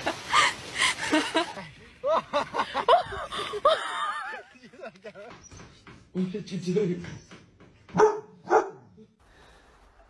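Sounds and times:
dog barking: 7.9 - 8.9.

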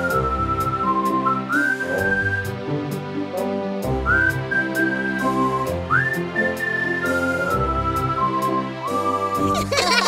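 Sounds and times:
whistled melody: 0.0 - 9.9.

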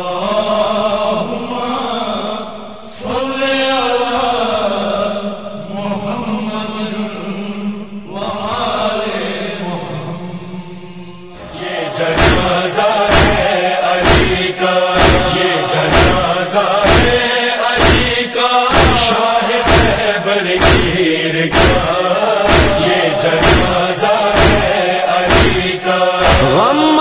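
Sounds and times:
group chanting in unison: 0.0 - 27.0
steady thumping beat: 12.2 - 17.2, 17.8 - 20.0, 20.6 - 26.9.

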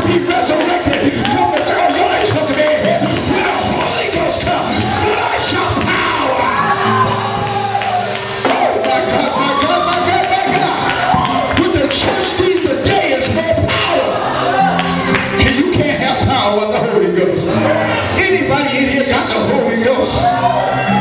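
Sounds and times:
church music: 0.0 - 21.0
congregation calling out: 0.0 - 21.0.

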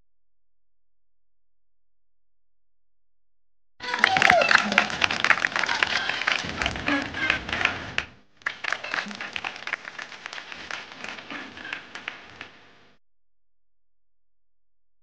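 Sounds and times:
children shouting: 3.8 - 7.8, 8.5 - 12.5
children clapping: 3.8 - 12.8.

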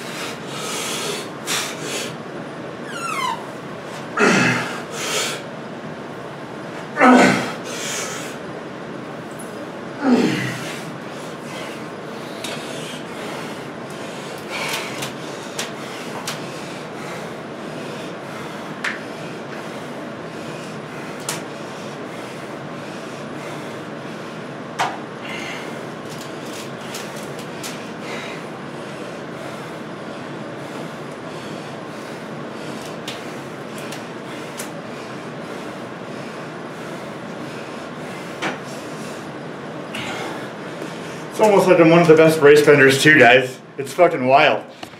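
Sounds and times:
man breathing sharply: 25.2 - 26.0.

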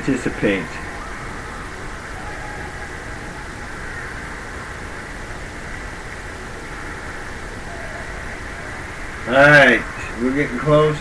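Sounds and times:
ice rink hum and hiss: 0.0 - 11.0.

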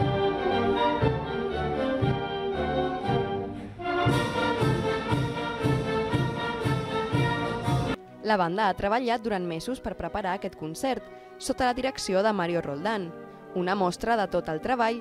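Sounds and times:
wind band playing: 0.0 - 8.0.

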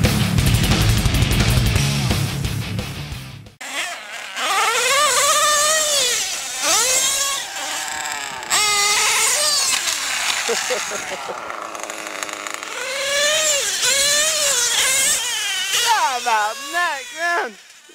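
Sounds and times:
rock music: 0.0 - 3.6
nitro engine revving: 0.0 - 17.9.

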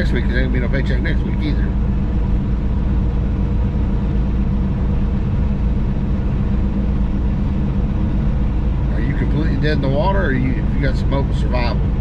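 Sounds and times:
diesel engine drone: 0.0 - 12.0
road noise: 0.0 - 12.0.

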